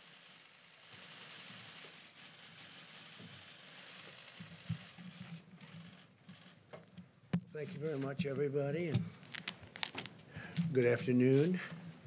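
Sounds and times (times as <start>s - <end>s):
camera shutters clicking: 9.0s - 10.2s
rustling: 9.0s - 10.4s.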